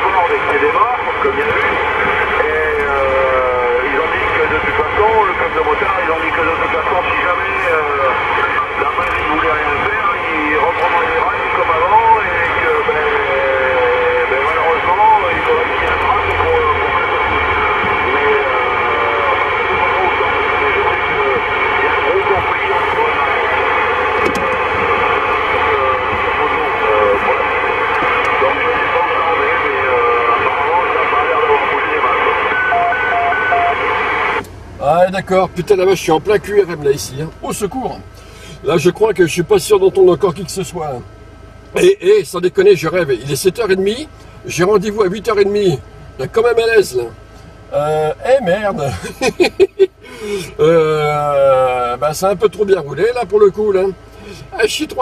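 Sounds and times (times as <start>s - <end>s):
radio voices and interference: 0.0s - 41.0s, 41.7s - 55.0s
short beeps: 32.5s - 33.8s.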